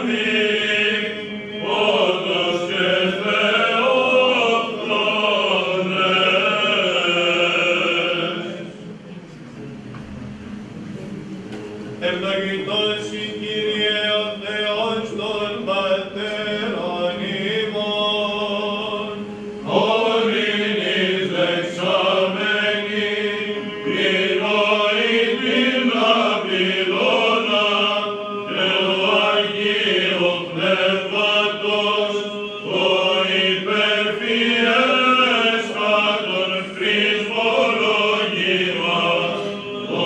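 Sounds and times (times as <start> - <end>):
male choir chanting: 0.0 - 8.8, 12.0 - 40.0
low held vocal drone: 0.0 - 40.0.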